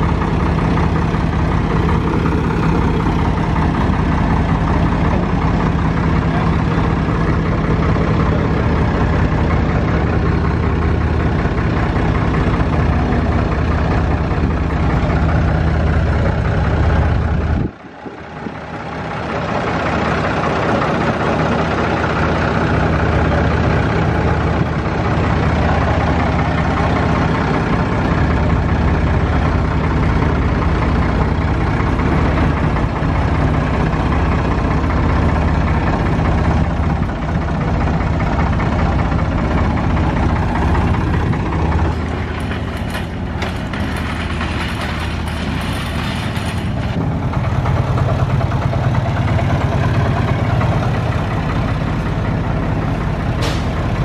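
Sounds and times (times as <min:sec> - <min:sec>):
forklift engine running: 0:00.0 - 0:54.0.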